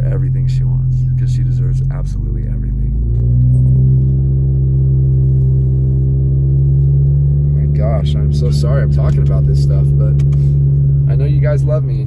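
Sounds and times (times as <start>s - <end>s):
car engine drone inside cabin: 0.0s - 12.0s.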